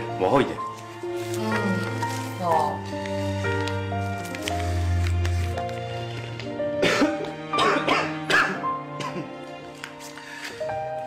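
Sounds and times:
gentle background music: 0:00.0 - 0:11.0
man coughing: 0:06.8 - 0:09.3.

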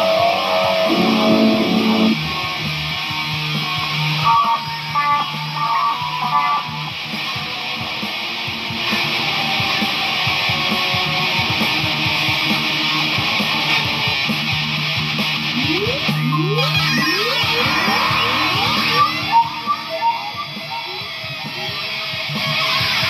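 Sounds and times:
distorted electric guitar: 0:00.0 - 0:23.0.

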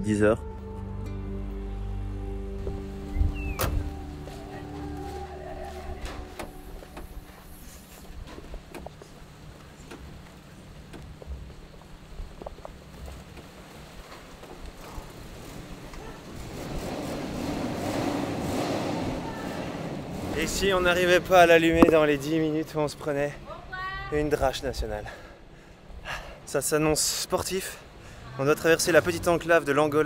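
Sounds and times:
background music: 0:00.0 - 0:08.6
tyres rolling on dirt: 0:02.8 - 0:23.4.

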